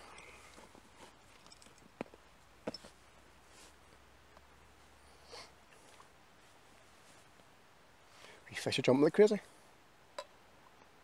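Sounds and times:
soft rustle: 0.0 - 8.6.

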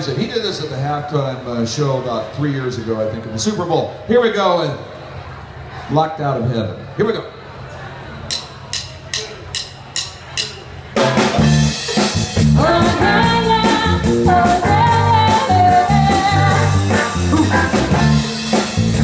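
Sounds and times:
live band playing: 8.6 - 19.0
voices singing: 12.5 - 18.1.

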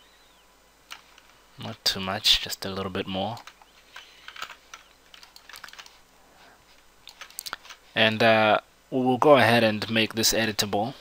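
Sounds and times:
keyboard and mouse clicks: 3.3 - 6.0, 7.0 - 7.8.

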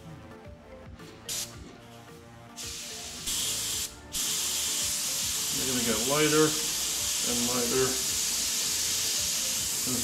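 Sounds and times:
airbrush spraying paint: 1.3 - 1.6, 2.6 - 10.0.

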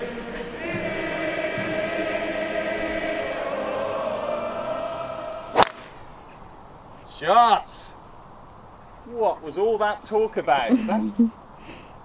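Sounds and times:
golf driver striking ball: 5.5 - 6.2.

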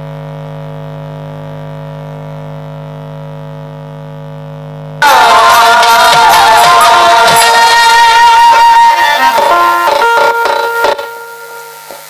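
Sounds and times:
violin holding a note: 5.0 - 12.0
sharp drum strokes: 5.2 - 12.0
faint held tone: 10.0 - 12.0.

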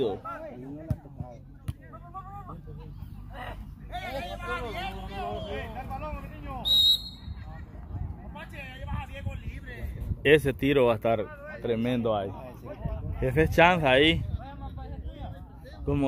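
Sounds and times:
referee's whistle blast: 6.6 - 7.3.

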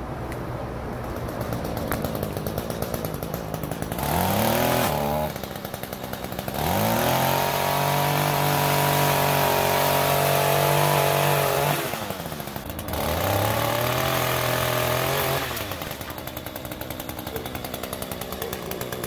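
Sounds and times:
pole saw engine revving: 1.0 - 19.0.

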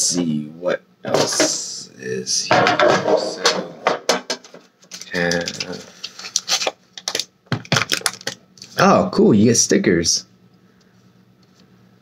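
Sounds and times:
plastic packaging rustling: 4.8 - 8.8.

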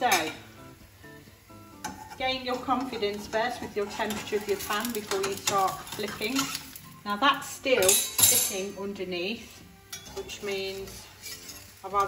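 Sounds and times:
pancake frying in pan: 1.3 - 7.2, 9.4 - 12.0
metal spatula clinking pan: 1.8 - 6.7, 7.8 - 8.7.

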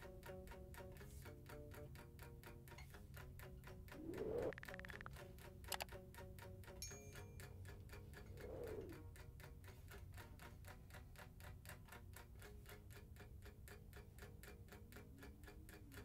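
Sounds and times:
faint steady ticking: 0.0 - 16.0
faint low held tones: 6.8 - 9.2.

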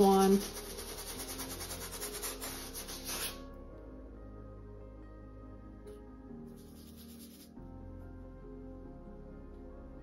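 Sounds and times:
paintbrush scrubbing on canvas: 0.1 - 3.5.

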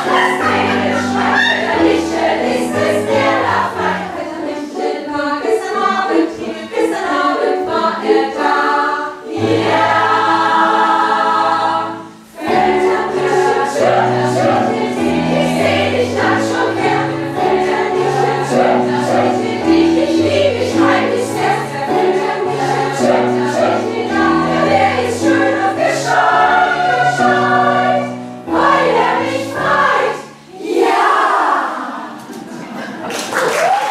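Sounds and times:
choir singing sustained chords: 0.0 - 32.2.

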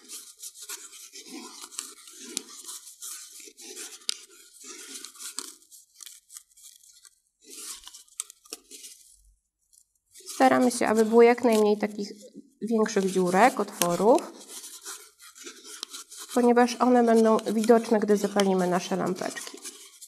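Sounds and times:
thread rubbing on balloon: 0.0 - 9.0, 10.1 - 20.0.

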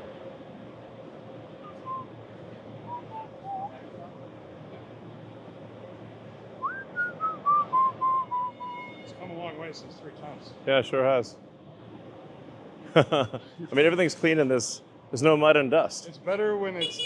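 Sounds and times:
steady background hum: 0.0 - 17.0
person whistling a tune: 6.6 - 8.8.

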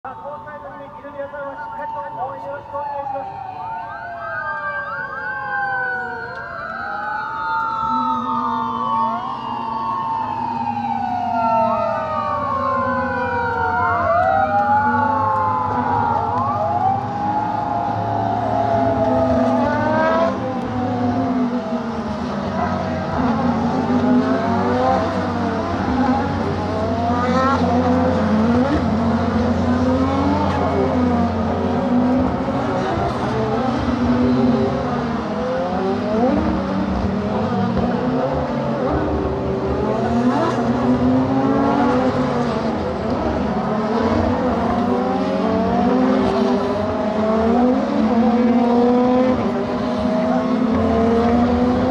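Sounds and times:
wailing sirens: 0.0 - 51.9
race car engines revving: 6.4 - 51.9.

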